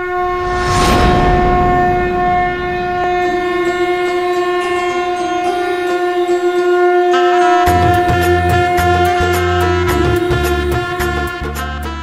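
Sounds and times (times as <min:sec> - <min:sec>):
conch shell blown: 0:00.0 - 0:12.0.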